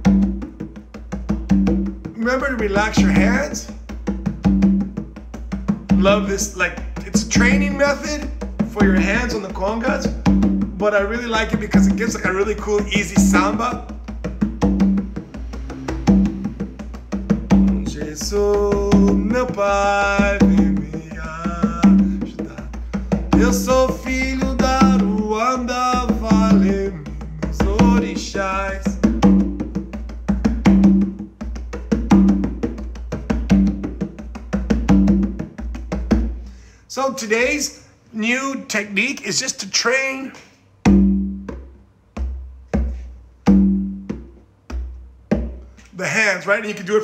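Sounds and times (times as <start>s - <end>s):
conga played by hand: 0.0s - 36.7s, 40.8s - 46.0s.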